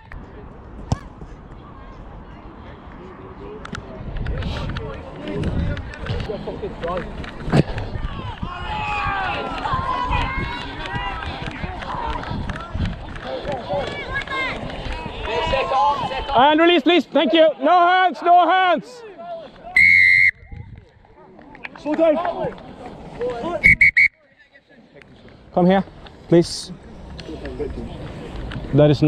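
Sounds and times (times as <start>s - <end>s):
wind rumble on microphone: 3.8s - 16.3s, 20.4s - 21.0s
players shouting: 8.0s - 20.3s.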